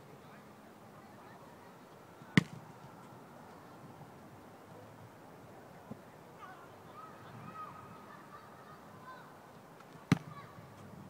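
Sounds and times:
foot kicking football: 2.4s - 2.6s, 10.1s - 10.4s.

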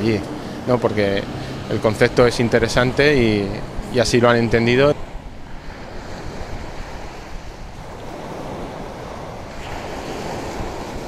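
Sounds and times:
sea waves washing: 0.0s - 11.0s
wind on microphone: 0.0s - 11.0s.

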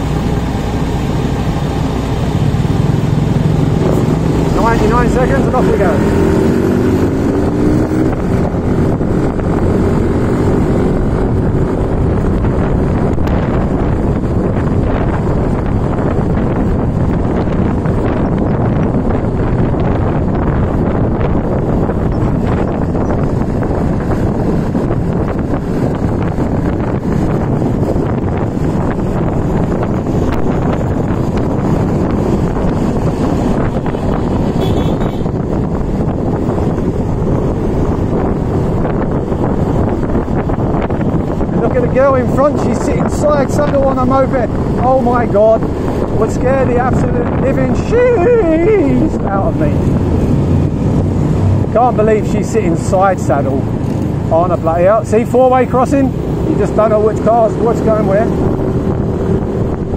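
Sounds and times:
scooter engine and road noise: 0.0s - 59.9s
wind rushing over microphone: 0.0s - 59.9s.

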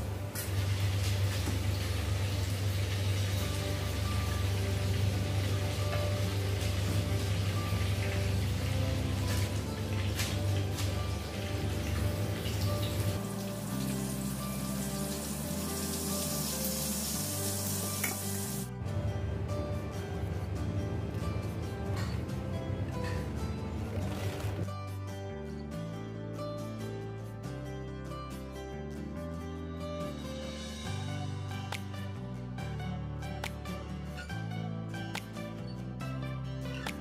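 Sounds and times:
chicken sizzling in hot oil: 0.0s - 18.7s.

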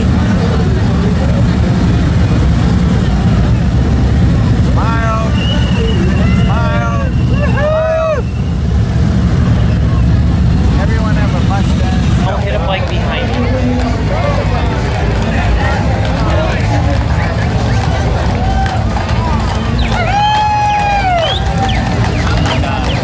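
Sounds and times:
motorcycle engines rumbling: 0.0s - 23.0s
whooping voices: 4.7s - 10.3s, 14.0s - 23.0s.

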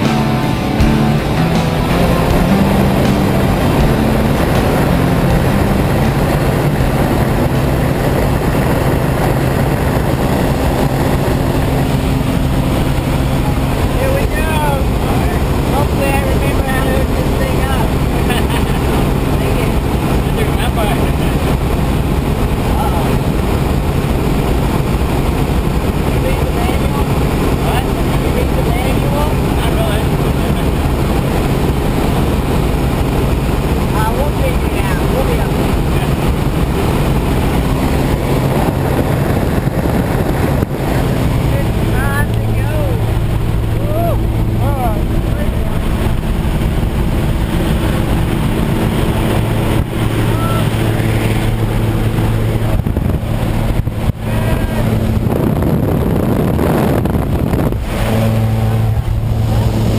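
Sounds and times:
music: 0.0s - 16.3s
plane engine and propeller drone: 0.0s - 59.9s.

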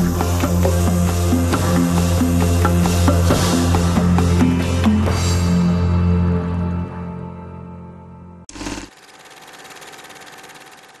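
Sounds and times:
small machine whirring: 8.5s - 11.0s.

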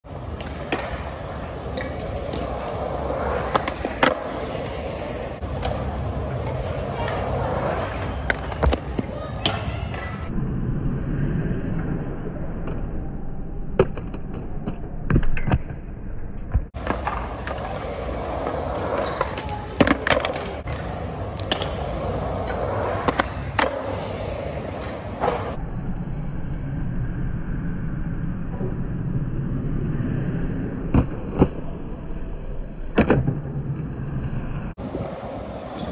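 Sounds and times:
skateboard wheels rolling on concrete: 0.0s - 10.3s, 16.7s - 25.6s, 33.2s - 35.9s.

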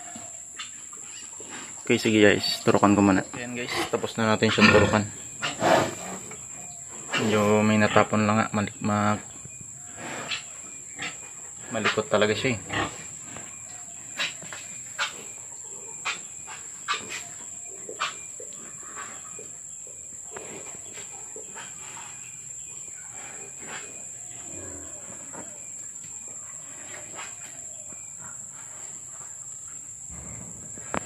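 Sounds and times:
pig shuffling: 13.0s - 31.0s.

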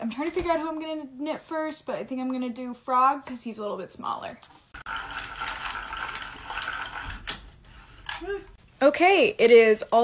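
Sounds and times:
yarn winder whirring: 4.8s - 7.4s.

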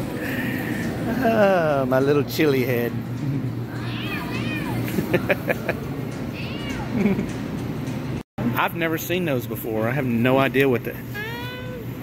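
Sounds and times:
toddler squealing: 11.1s - 12.0s.

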